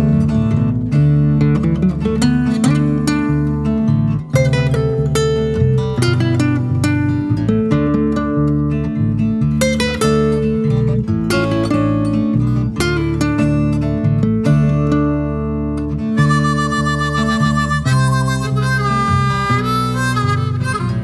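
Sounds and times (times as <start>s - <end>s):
acoustic guitar: 0.0s - 21.0s
harmonica trill: 16.1s - 21.0s.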